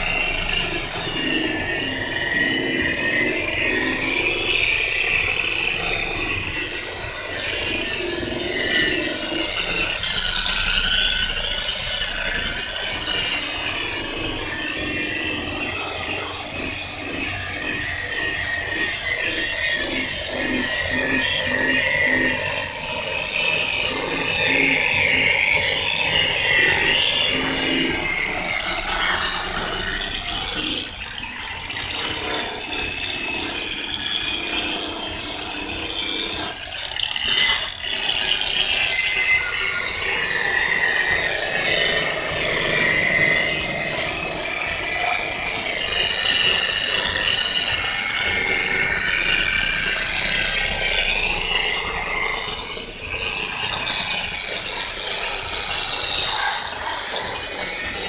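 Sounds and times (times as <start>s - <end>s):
electric polisher whirring: 0.0s - 58.0s.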